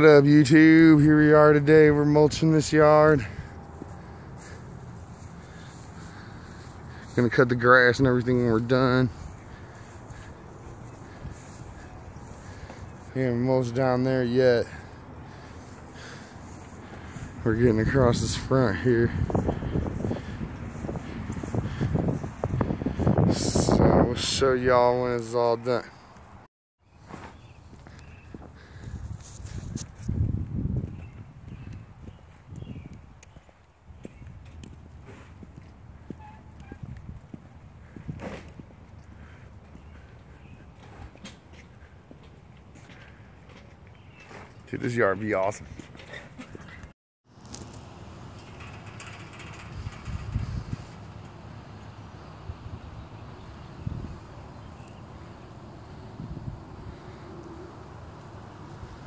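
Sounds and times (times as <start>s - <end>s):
footsteps on pavement: 2.0s - 13.4s, 14.6s - 23.2s, 27.0s - 44.6s
low rumbling on microphone: 14.8s - 24.2s, 49.6s - 51.1s.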